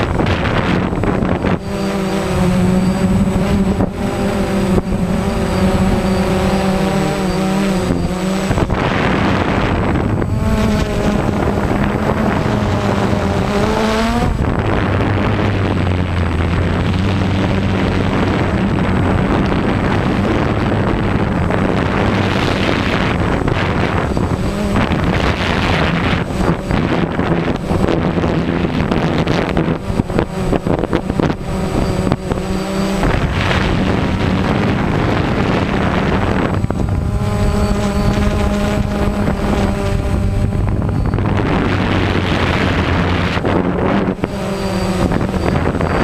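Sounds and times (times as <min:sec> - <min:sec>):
drone propellers humming: 0:00.0 - 0:46.0
wind buffeting microphone: 0:00.0 - 0:46.0.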